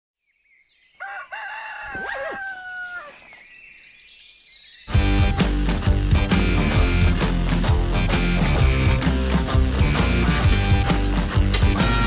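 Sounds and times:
faint birds chirping: 0:00.2 - 0:05.2
rooster crowing: 0:01.0 - 0:03.3.

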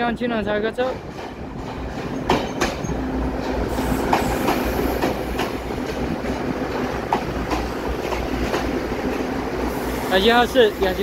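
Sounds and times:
train rumbling and humming: 0:00.0 - 0:11.0
wheels clacking over rail joints: 0:00.7 - 0:11.0.

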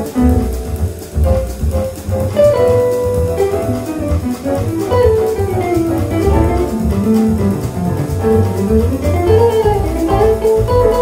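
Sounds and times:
double bass: 0:00.0 - 0:11.0
guitar: 0:00.0 - 0:11.0
jazz ensemble playing: 0:00.0 - 0:11.0.

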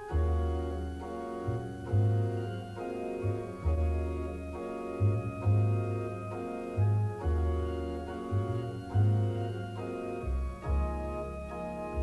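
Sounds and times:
deep bass line: 0:00.0 - 0:12.0
sustained organ chords: 0:00.0 - 0:12.0.

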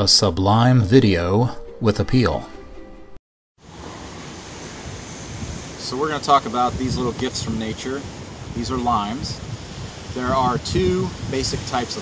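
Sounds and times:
wind on microphone: 0:04.7 - 0:12.0.

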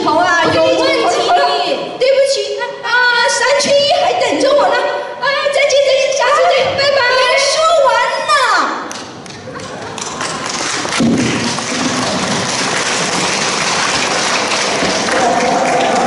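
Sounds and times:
audience clapping: 0:08.9 - 0:16.0
audience chatter: 0:09.1 - 0:16.0
thump: 0:11.0 - 0:12.2.

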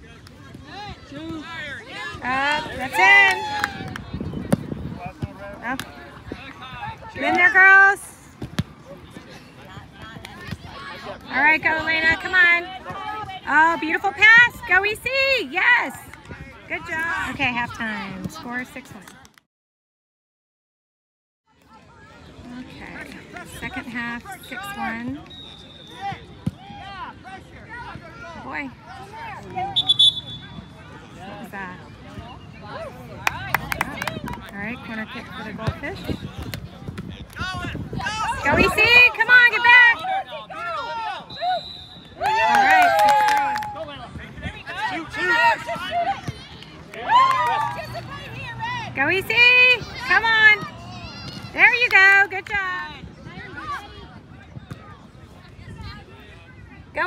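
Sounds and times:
voices calling outdoors: 0:21.7 - 0:57.0.

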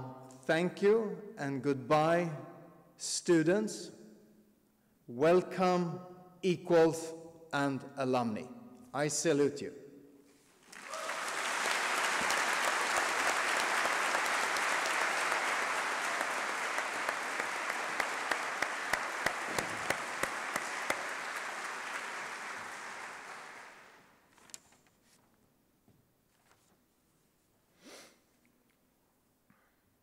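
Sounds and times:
audience applauding: 0:10.6 - 0:24.2.

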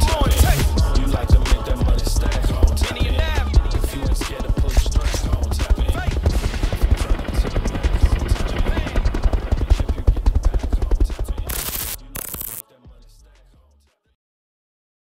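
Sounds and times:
helicopter rotor chopping: 0:00.0 - 0:12.6
music beat: 0:00.0 - 0:13.8.

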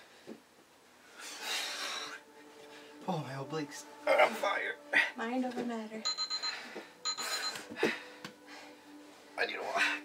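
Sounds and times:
interval timer beeps: 0:06.0 - 0:07.6.

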